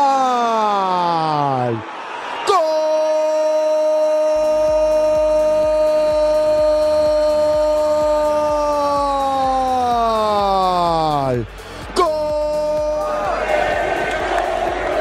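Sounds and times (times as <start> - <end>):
commentator shouting: 2.4 - 13.6
music with steady beat: 4.4 - 15.0.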